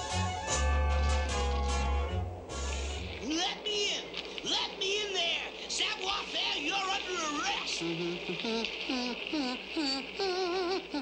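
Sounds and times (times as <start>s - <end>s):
cartoon voice hums and whines: 7.8s - 11.0s.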